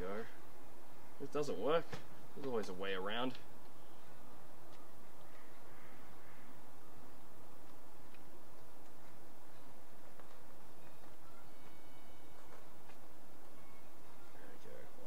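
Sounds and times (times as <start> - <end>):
outdoor background noise: 0.0 - 15.0
faint high-pitched call: 10.7 - 15.0.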